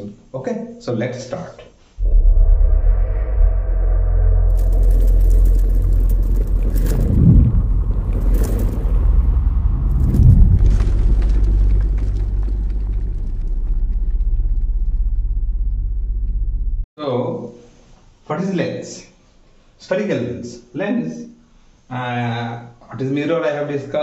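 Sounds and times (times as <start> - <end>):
whooshing hits: 2.0 - 13.4
deep bass rumble: 2.0 - 16.9.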